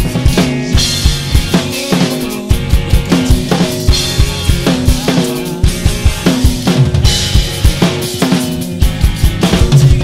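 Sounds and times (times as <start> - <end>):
guitar and bass backing track: 0.0 - 10.0
rock drum kit played hard: 0.0 - 10.0.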